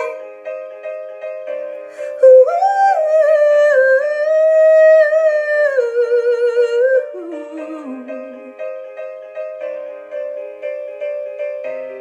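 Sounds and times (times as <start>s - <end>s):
quiet musical accompaniment: 0.0s - 12.0s.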